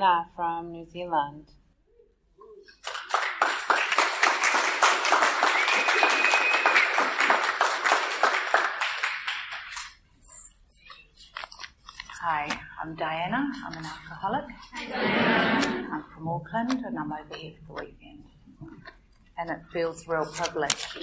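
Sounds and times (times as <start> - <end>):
audience applauding: 2.8 - 10.0.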